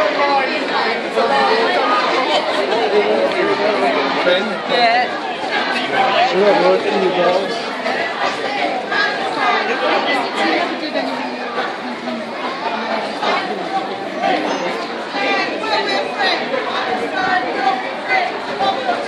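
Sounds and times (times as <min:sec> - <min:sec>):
crowd talking: 0:00.0 - 0:19.0.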